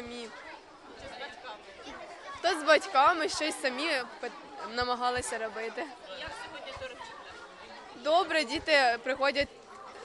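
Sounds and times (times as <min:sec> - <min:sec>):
background chatter of many voices: 0:00.0 - 0:10.0.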